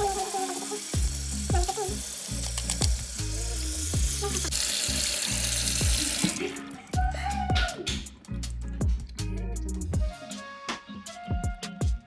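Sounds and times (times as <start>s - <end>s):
tap water running into a bowl: 0.0s - 7.0s
music with a steady beat: 5.8s - 12.0s.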